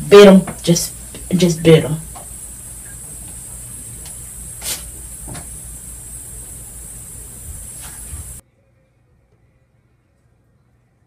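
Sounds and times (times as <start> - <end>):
background hiss: 0.0 - 8.4.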